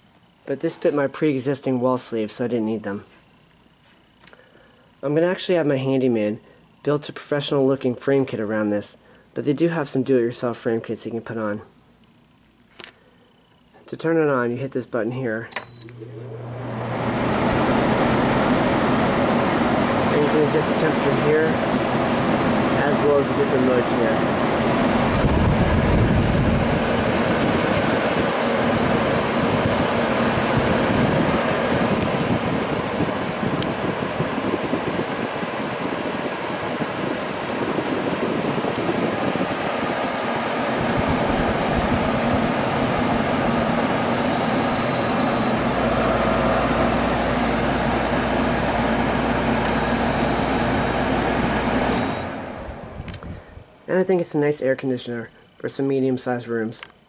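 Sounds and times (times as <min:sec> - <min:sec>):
air conditioner fan blowing: 0:00.0 - 0:57.0
low hum: 0:39.6 - 0:53.7.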